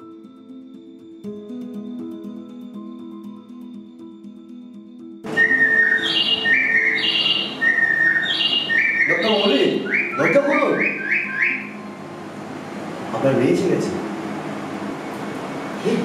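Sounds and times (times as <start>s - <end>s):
person whistling a tune: 5.3s - 11.7s.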